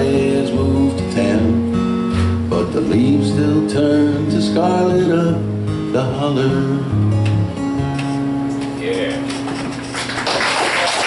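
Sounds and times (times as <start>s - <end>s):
acoustic guitar chord ringing: 0.0s - 10.0s
audience applause: 9.7s - 11.0s.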